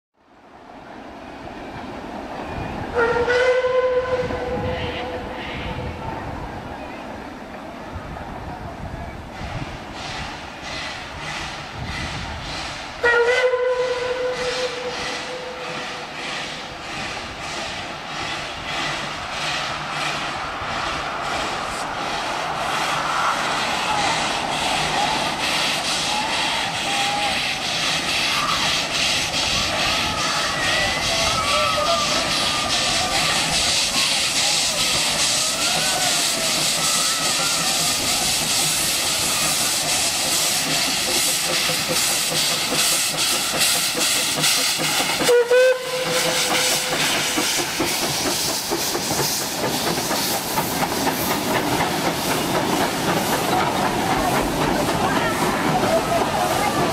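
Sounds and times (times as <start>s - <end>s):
steam whistle blast: 3.0s - 4.8s, 13.0s - 16.1s, 45.2s - 47.4s
hiss of steam: 8.8s - 13.1s, 13.9s - 56.9s
steam locomotive exhaust beat: 9.4s - 56.9s.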